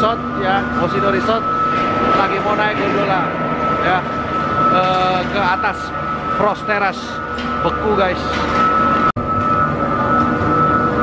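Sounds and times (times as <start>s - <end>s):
gondola lift machinery whine: 0.0s - 11.0s
machinery low hum: 0.0s - 11.0s.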